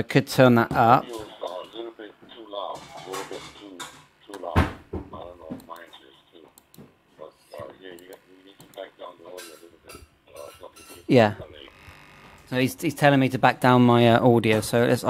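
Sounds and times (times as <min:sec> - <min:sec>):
thin telephone-like speech: 0:01.0 - 0:06.6, 0:07.2 - 0:12.8.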